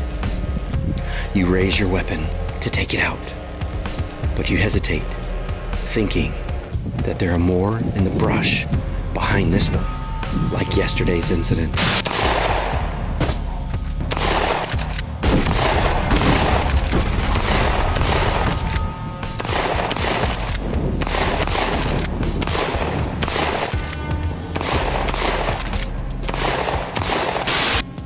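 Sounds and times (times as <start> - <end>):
background music with low bass: 0.0 - 28.0
shotgun shots with ringing tail: 11.8 - 13.5, 14.1 - 18.7, 19.4 - 23.7.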